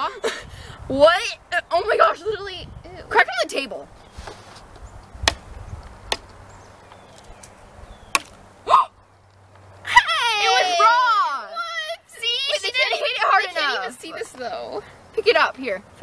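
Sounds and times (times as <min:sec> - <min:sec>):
girl laughing: 0:00.0 - 0:00.5, 0:09.9 - 0:11.0.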